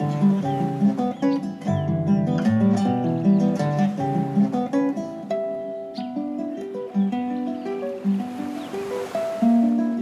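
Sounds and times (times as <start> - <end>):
ocean waves on shore: 0.0 - 1.7, 2.6 - 10.0
classical guitar melody: 0.0 - 10.0.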